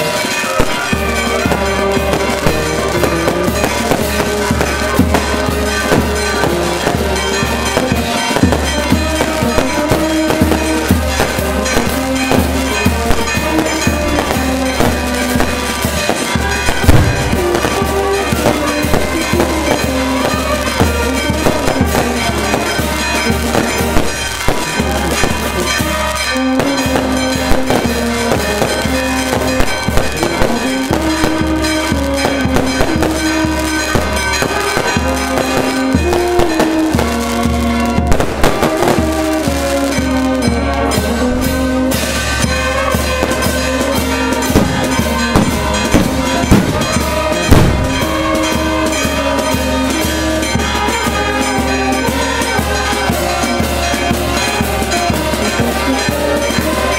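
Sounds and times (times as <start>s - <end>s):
brass band playing slow tune: 0.0s - 56.9s
fireworks cracks and bangs: 0.0s - 56.9s.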